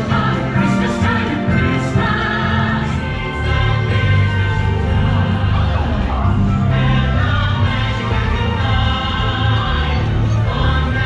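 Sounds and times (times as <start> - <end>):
choir singing over music backing: 0.0 - 11.0.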